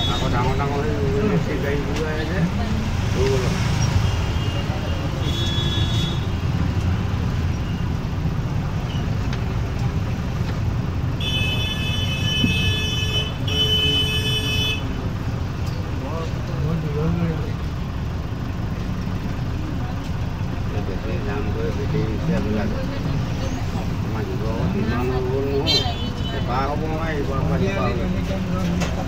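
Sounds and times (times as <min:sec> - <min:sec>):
vehicle engines rumbling: 0:00.0 - 0:29.0.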